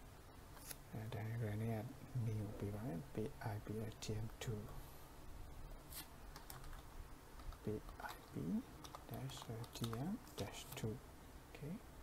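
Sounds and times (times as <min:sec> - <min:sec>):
computer keyboard keystrokes: 0:06.3 - 0:10.6.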